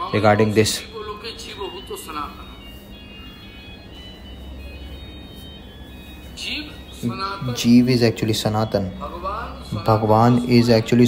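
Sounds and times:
faint steady high tones: 0.0 - 11.0
steady low hum: 0.0 - 11.0.

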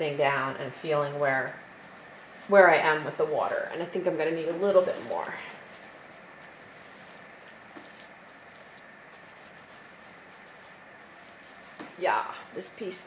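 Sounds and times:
soapy hands rubbing wet wool: 0.0 - 13.0
steady low hiss: 0.0 - 13.0.

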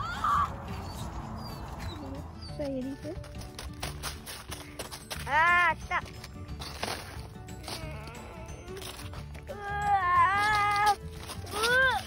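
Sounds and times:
background music: 0.0 - 12.0
footsteps crunching in snow: 0.2 - 9.6, 10.3 - 12.0.

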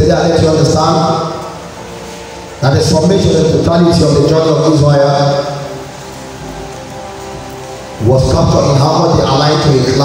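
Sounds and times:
even hiss: 0.0 - 10.0
soft keyboard chords: 0.0 - 10.0.

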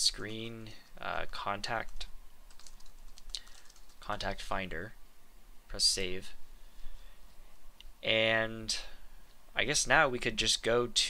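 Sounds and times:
computer keyboard typing: 1.2 - 4.2.

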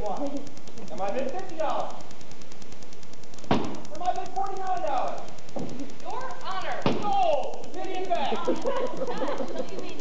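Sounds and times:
sharp knocks: 3.5 - 3.8, 6.8 - 7.2
actors speaking on stage: 3.9 - 10.0.

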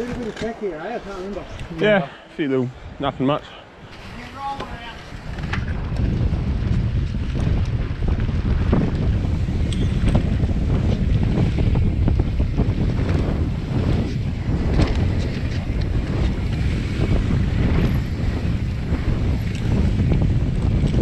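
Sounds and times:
bike clicks and rattles: 0.0 - 1.8, 3.9 - 21.0
wind buffeting microphone: 0.0 - 21.0.

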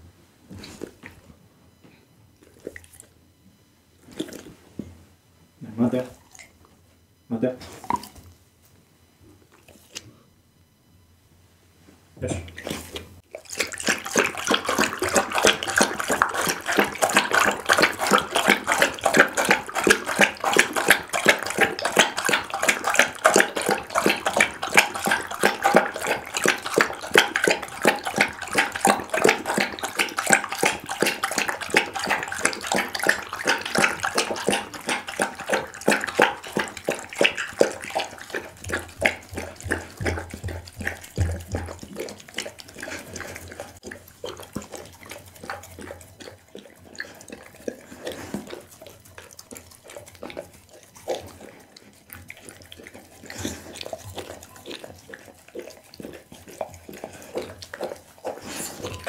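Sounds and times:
dog lapping broth: 2.4 - 3.2, 4.0 - 4.6, 5.8 - 6.6, 7.6 - 8.3, 12.4 - 59.0.

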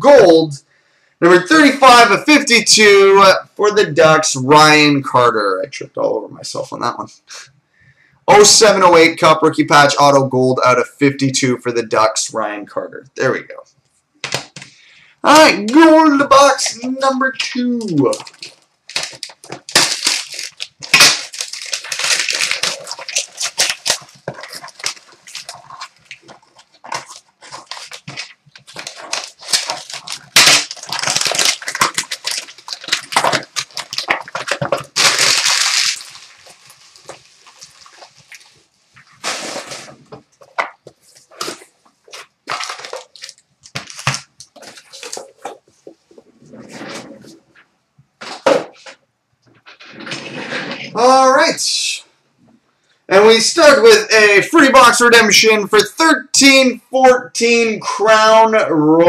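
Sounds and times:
foil wrapping paper crinkling and tearing: 15.8 - 45.7
box and cards handled: 16.6 - 46.0.

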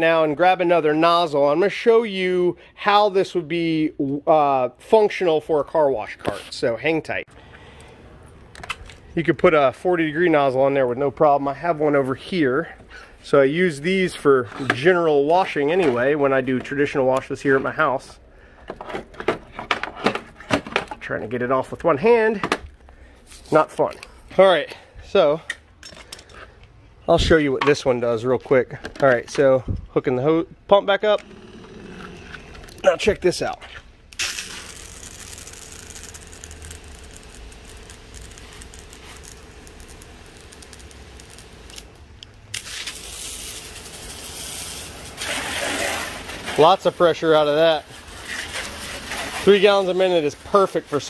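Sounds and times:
pump humming: 31.2 - 32.8
spray hissing on concrete: 34.2 - 41.8, 42.5 - 51.0
water stream from hose nozzle: 34.2 - 41.8, 42.5 - 51.0.

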